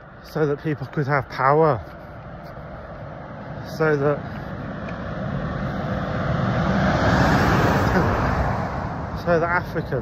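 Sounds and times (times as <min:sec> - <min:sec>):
car driving past: 0:02.8 - 0:10.0.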